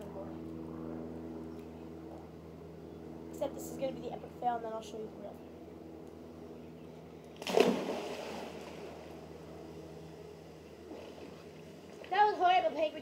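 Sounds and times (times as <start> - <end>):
splash into swimming pool: 7.4 - 8.8
water sloshing: 7.4 - 9.3.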